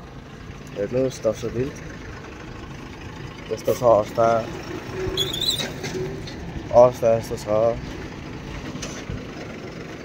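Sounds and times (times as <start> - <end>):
truck engine idling: 0.0 - 10.0.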